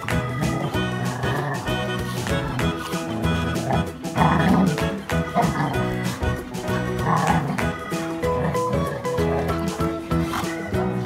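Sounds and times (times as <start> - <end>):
background music: 0.0 - 11.0
dogs barking: 0.0 - 11.0.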